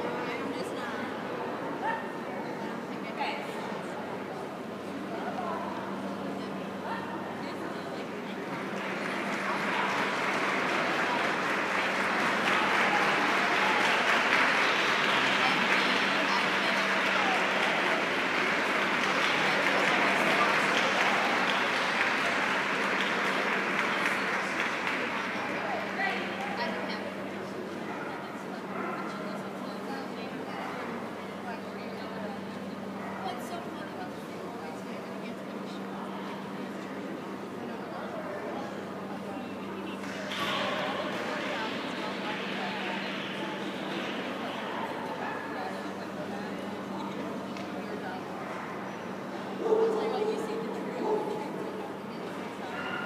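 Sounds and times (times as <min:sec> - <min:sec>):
voices: 0:00.0 - 0:53.0
audience applauding: 0:08.4 - 0:27.0.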